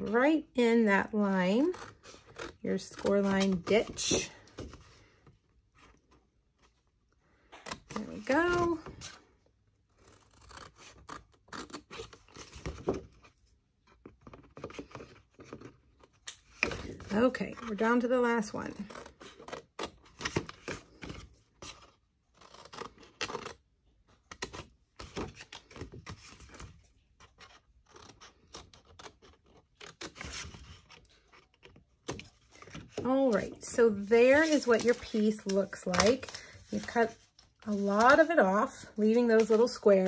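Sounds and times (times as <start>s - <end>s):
scissors snipping cardstock: 1.4s - 4.4s, 31.4s - 38.3s.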